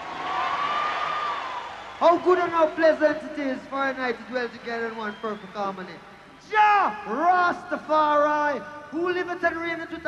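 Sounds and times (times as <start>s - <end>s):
concert audience cheering: 0.0s - 8.2s.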